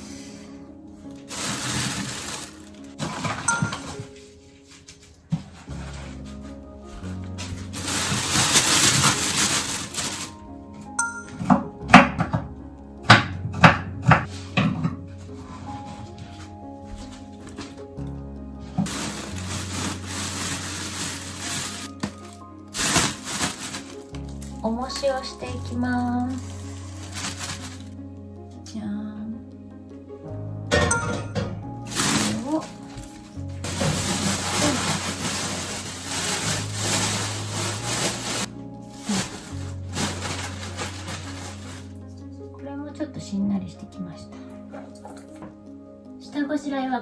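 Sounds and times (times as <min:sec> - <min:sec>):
background music with low bass: 0:00.0 - 0:47.0
rustling handling noise: 0:01.1 - 0:11.3, 0:18.6 - 0:28.0, 0:31.8 - 0:42.0.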